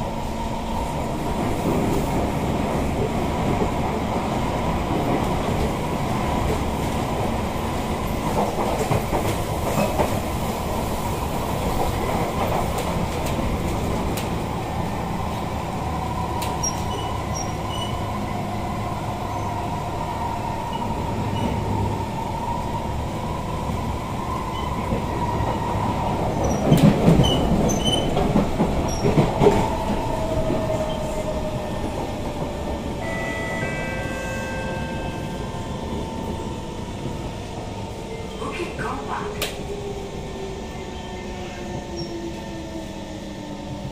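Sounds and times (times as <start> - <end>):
rumble of train wheels: 0.0 - 43.9.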